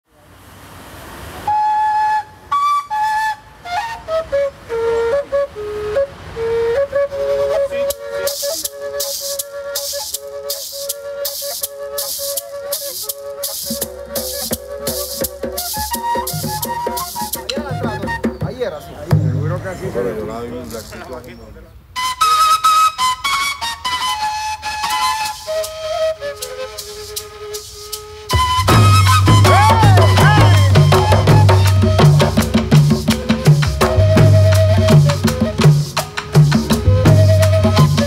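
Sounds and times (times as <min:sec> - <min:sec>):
duct flute slow melody: 0:01.4 - 0:19.2, 0:21.9 - 0:38.0
maraca shaking: 0:07.4 - 0:18.7, 0:24.7 - 0:38.0
low hand-drum strokes: 0:07.9 - 0:19.8, 0:26.8 - 0:38.0.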